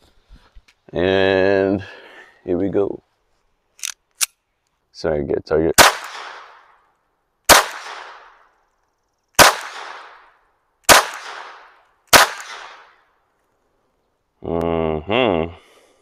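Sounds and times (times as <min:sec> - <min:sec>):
pistol shots with echo: 0:05.8 - 0:06.7, 0:07.5 - 0:08.4, 0:09.4 - 0:13.0.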